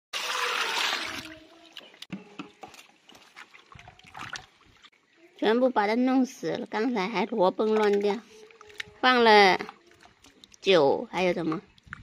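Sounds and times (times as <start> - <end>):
water splashing in a steel pot: 0.2 - 5.2, 6.2 - 12.0
hands rubbing fish in water: 2.6 - 4.9.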